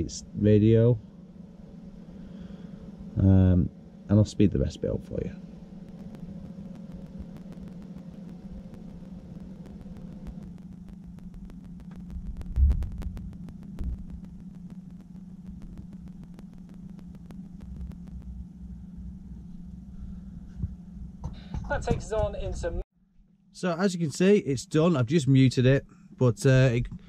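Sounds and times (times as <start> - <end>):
steady low hum: 0.0 - 27.0
low rumble: 5.8 - 21.2.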